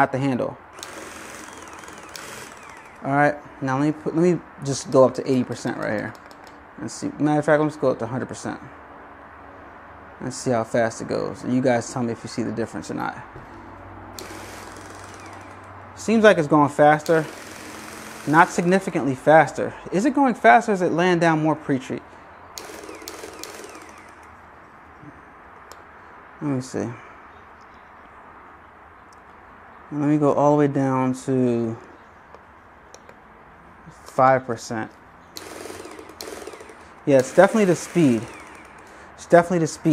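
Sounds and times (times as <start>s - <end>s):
motor whirring: 0.8s - 3.1s, 14.2s - 15.8s, 17.0s - 19.0s, 22.6s - 24.4s, 35.4s - 39.0s.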